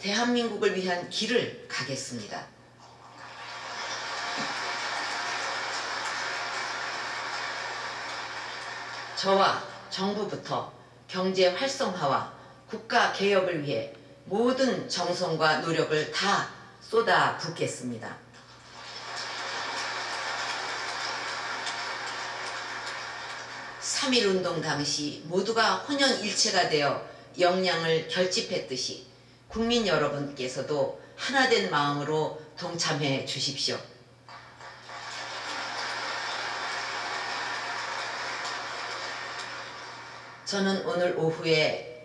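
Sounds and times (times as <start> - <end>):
audience applauding: 3.1 - 9.3, 18.7 - 23.9, 34.3 - 40.5.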